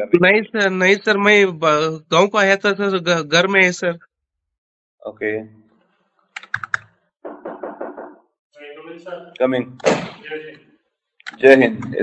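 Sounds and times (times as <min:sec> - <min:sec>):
sharp clicks: 0:06.3 - 0:06.9.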